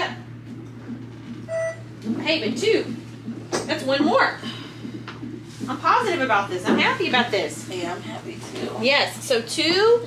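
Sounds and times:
short electronic beep: 1.5 - 1.9.

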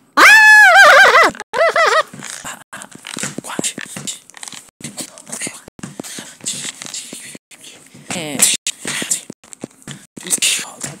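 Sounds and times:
person whispering: 3.4 - 4.2, 4.9 - 9.3, 10.2 - 11.0.

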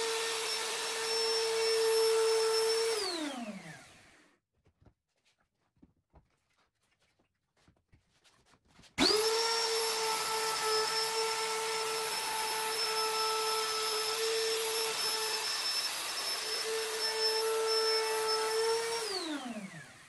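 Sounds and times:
router running at high speed: 0.0 - 4.2, 9.0 - 20.0.

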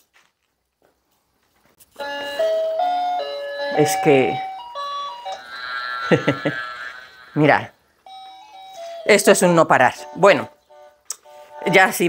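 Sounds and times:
electronic toy beeping tune: 2.3 - 9.3.

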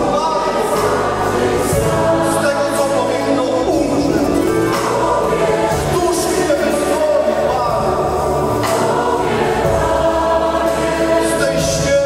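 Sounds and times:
choir singing worship song: 0.0 - 12.0
acoustic guitar and band: 3.6 - 10.1.

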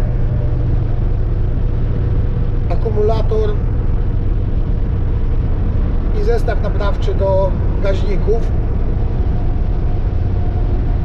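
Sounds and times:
road noise: 0.0 - 11.0
vehicle engine drone: 0.0 - 11.0.

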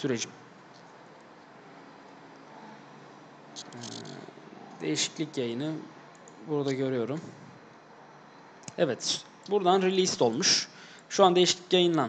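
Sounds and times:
man speaking: 0.0 - 0.4, 3.6 - 7.4, 8.7 - 12.0.

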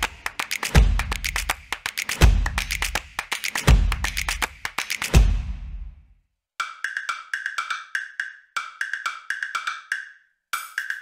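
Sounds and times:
rapid wood-block ticking: 0.0 - 5.2, 6.6 - 11.0.

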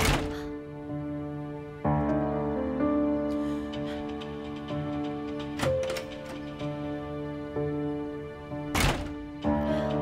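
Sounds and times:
door shutting thunk: 0.0 - 0.5, 8.7 - 9.3
drama music with sustained notes: 0.0 - 10.0.

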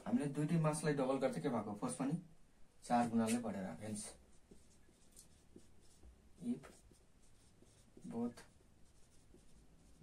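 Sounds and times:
marker scratching on whiteboard: 3.0 - 10.0.

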